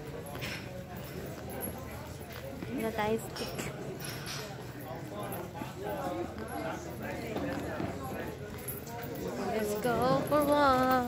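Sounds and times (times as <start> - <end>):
chatter of passers-by: 0.0 - 11.0.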